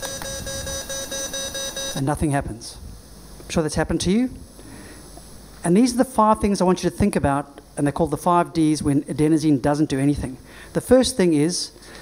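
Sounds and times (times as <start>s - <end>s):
patient monitor rapid beeps: 0.0s - 2.1s.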